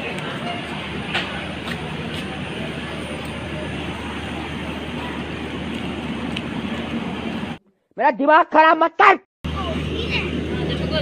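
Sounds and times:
train engine rumble and hum: 0.0s - 7.6s, 9.5s - 11.0s.

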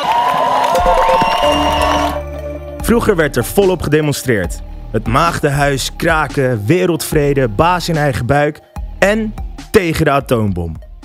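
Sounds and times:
crowd cheering: 0.0s - 2.4s
music sting with rising tone: 0.8s - 2.5s.

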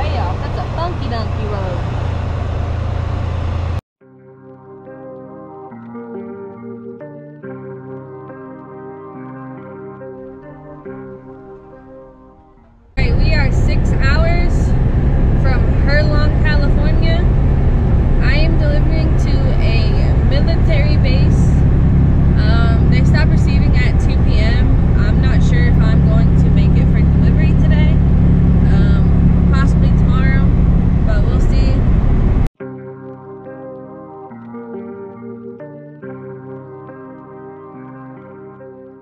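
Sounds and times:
truck engine and road noise: 0.0s - 3.8s, 13.0s - 32.5s.

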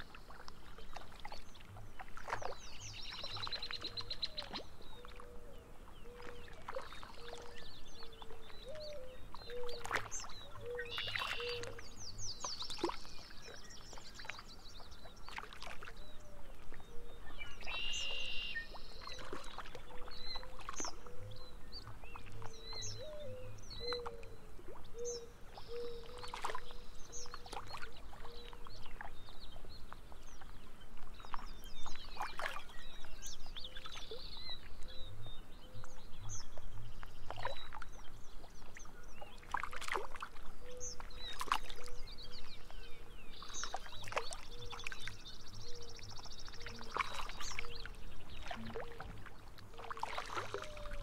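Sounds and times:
songbirds chirping and trilling: 0.0s - 51.0s
water lapping: 0.0s - 51.0s.

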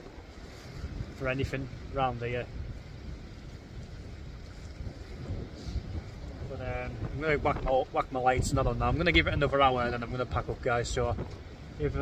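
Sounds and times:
sea waves washing: 0.0s - 12.0s
wind rumbling on microphone: 0.0s - 12.0s.

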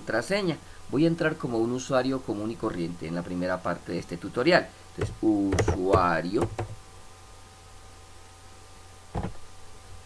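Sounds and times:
faint electrical hum: 0.0s - 10.0s
keyboard keystroke: 5.0s - 6.8s.

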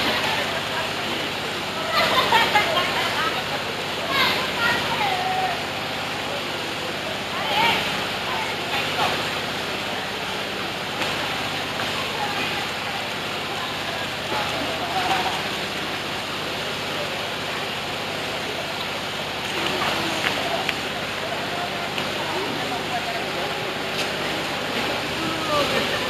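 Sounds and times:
running water rushing: 0.0s - 26.0s
voices and calls of bathers: 0.0s - 26.0s.

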